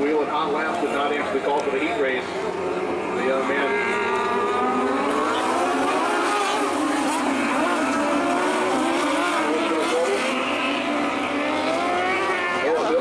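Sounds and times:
racing car engines revving: 0:00.0 - 0:13.0.

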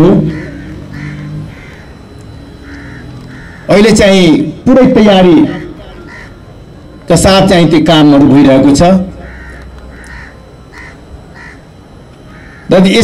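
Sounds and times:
bird calling: 0:00.0 - 0:07.0, 0:08.8 - 0:13.0
man speaking into a microphone: 0:03.7 - 0:06.0, 0:07.1 - 0:09.2, 0:12.7 - 0:13.0.

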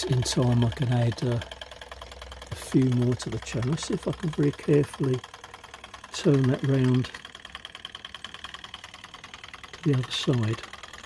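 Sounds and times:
model engine rapid ticking: 0:00.0 - 0:11.0.

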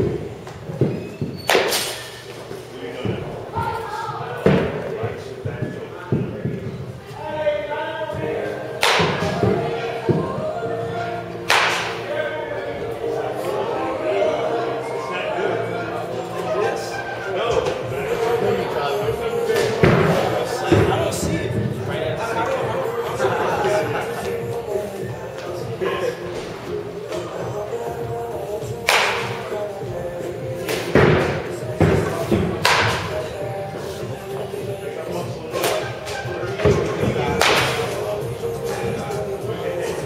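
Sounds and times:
baseball bat hitting balls: 0:00.0 - 0:02.5, 0:08.6 - 0:10.2, 0:11.3 - 0:12.1, 0:19.4 - 0:21.6, 0:28.7 - 0:33.5, 0:35.6 - 0:38.8
background music: 0:00.0 - 0:40.0
baseball bat hitting ball: 0:01.5 - 0:02.1, 0:08.8 - 0:09.6, 0:11.4 - 0:12.1, 0:28.8 - 0:29.5, 0:30.6 - 0:33.2, 0:37.3 - 0:38.0.

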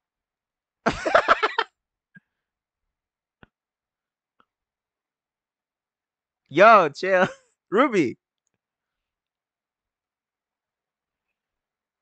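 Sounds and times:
man's voice: 0:06.5 - 0:08.2.

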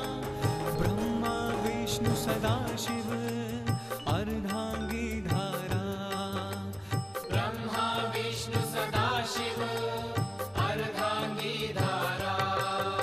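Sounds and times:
devotional chant singing: 0:00.0 - 0:13.0
instrumental backing music: 0:00.0 - 0:13.0.

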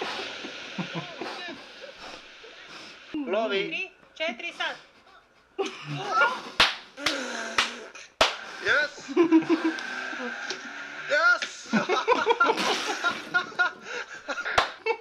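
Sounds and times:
excited voices: 0:05.6 - 0:12.6
sharp smacks: 0:06.6 - 0:08.5.

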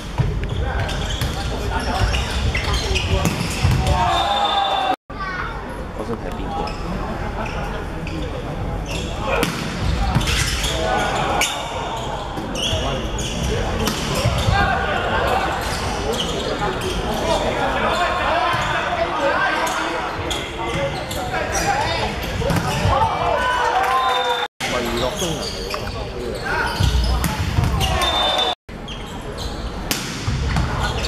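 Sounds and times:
sneakers squeaking on court: 0:00.2 - 0:04.5, 0:07.4 - 0:14.7, 0:19.6 - 0:23.2, 0:24.7 - 0:31.0.

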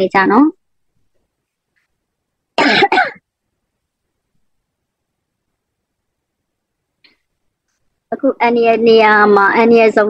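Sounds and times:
person coughing: 0:02.6 - 0:03.2.

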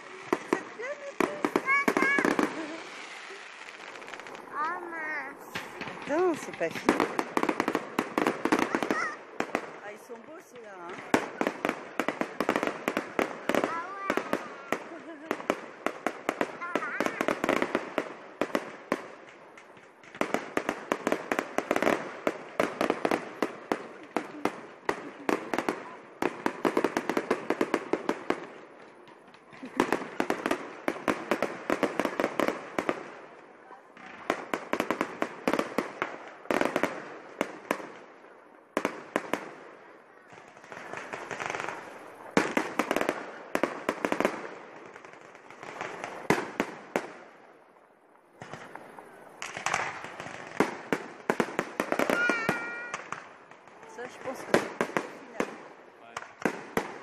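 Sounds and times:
crowd voices: 0:00.0 - 0:07.1
fireworks popping and crackling: 0:00.0 - 0:57.0.

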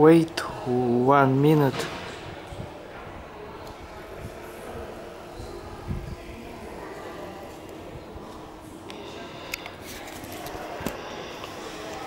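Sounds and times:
hum and hiss of underground station: 0:00.0 - 0:12.0.

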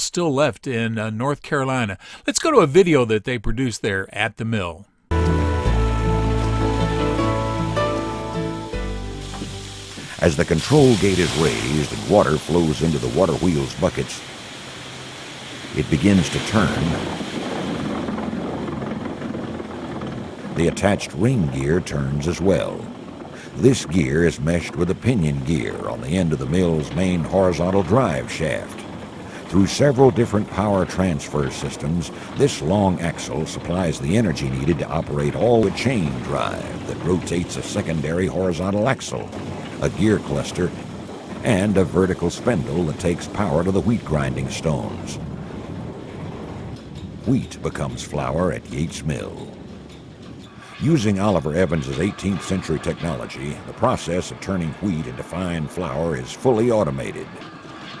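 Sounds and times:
water pouring onto water wheel: 0:06.4 - 0:58.0.

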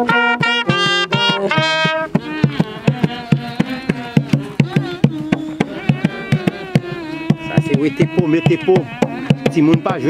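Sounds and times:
buzzing wavering horn: 0:00.0 - 0:02.7
drum beating: 0:00.0 - 0:10.0.

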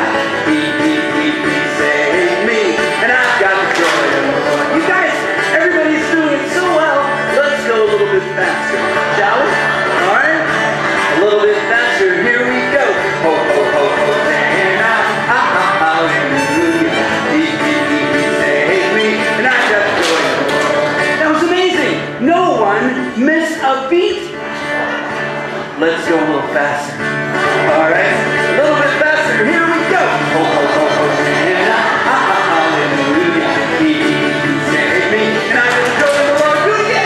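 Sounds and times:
person singing: 0:00.0 - 0:04.9, 0:13.2 - 0:21.2
person singing children's song: 0:00.0 - 0:07.7, 0:11.1 - 0:21.5, 0:27.5 - 0:37.0
acoustic guitar strumming: 0:00.0 - 0:21.5.

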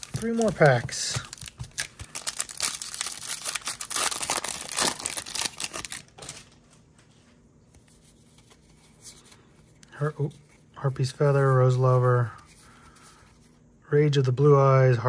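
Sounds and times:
foil wrapper tearing and crinkling: 0:00.0 - 0:06.6.

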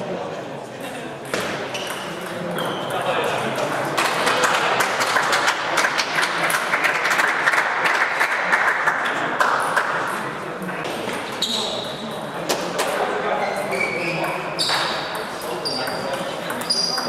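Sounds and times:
hubbub of voices echoing: 0:00.0 - 0:17.0.

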